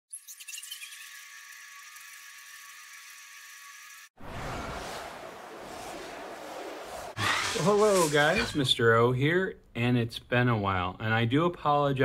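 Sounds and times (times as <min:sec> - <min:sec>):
high shimmering hiss: 0:04.4 - 0:08.7.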